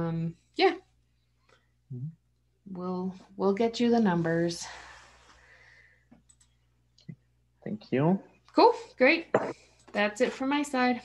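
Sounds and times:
soft clicks: 6.1s - 7.1s.

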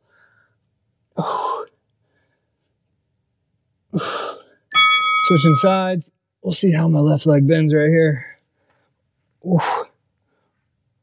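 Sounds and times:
high electronic tone: 4.7s - 5.9s.

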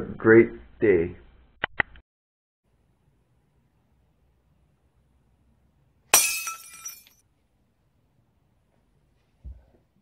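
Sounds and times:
glass shattering: 6.1s - 7.2s.

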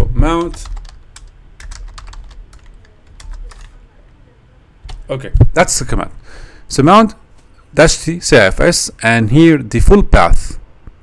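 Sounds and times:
computer keyboard typing: 0.2s - 4.2s, 4.8s - 5.1s.

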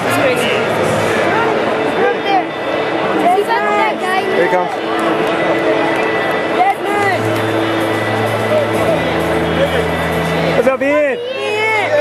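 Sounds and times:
faint chattering voices: 0.0s - 12.0s
music over loudspeakers: 0.0s - 12.0s.

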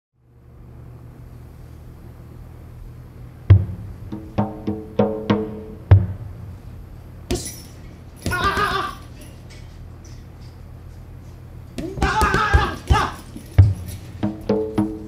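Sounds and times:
low steady drone: 0.2s - 8.3s
bongos struck: 3.5s - 6.6s, 11.8s - 15.0s.

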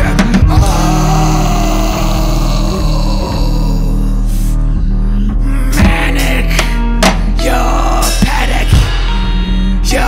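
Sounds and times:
low bass and synth drone: 0.0s - 10.0s.

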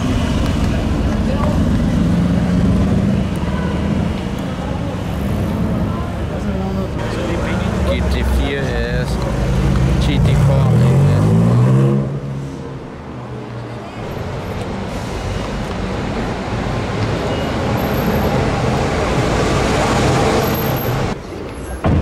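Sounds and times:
street noise: 0.0s - 22.0s
sports car accelerating past: 10.7s - 12.5s.

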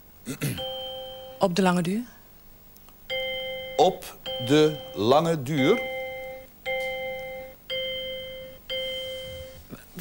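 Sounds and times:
electronic game-show chime: 0.6s - 1.6s, 3.1s - 9.6s.

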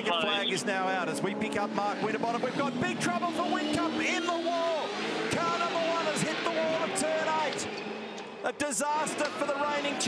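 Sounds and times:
man shouting excitedly: 0.0s - 0.7s
race cars on track: 0.0s - 10.0s.

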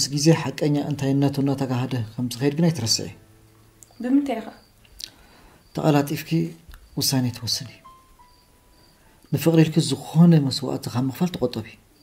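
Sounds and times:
man speaking: 0.0s - 3.2s, 5.7s - 7.8s, 9.3s - 11.8s
cricket chirps: 0.0s - 12.0s.

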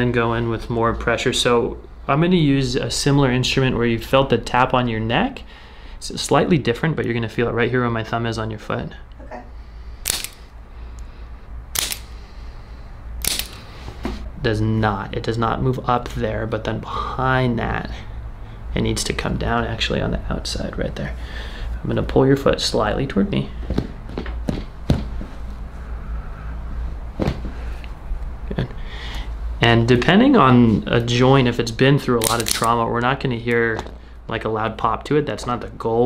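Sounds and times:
steady low hum: 0.0s - 36.0s
spring-loaded instrument clicks: 10.1s - 10.4s, 11.8s - 12.1s, 13.2s - 13.6s.

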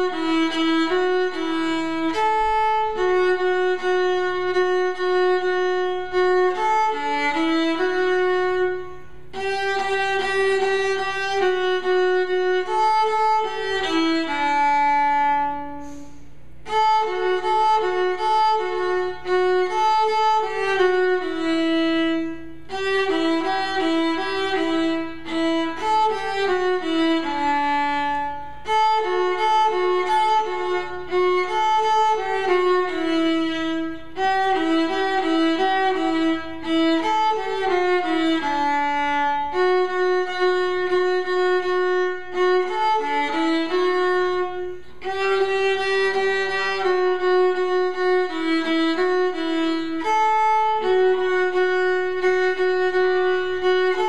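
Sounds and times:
bowed string instrument melody: 0.0s - 54.0s.

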